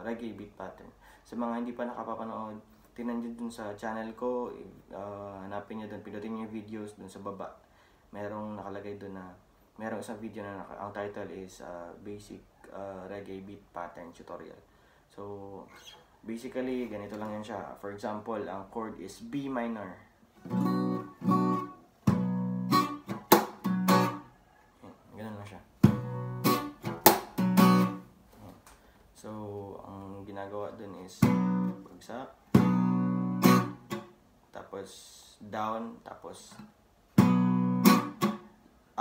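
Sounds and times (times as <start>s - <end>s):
acoustic guitar strumming: 20.4s - 24.3s, 25.8s - 28.1s, 31.2s - 31.9s, 32.5s - 34.2s, 36.6s - 38.5s
muted guitar strokes: 20.4s - 24.3s, 25.8s - 28.7s, 32.5s - 34.1s.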